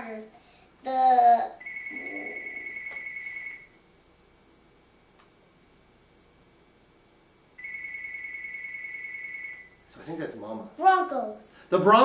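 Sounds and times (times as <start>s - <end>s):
electronic telephone ringer: 1.6s - 3.7s, 7.6s - 9.7s.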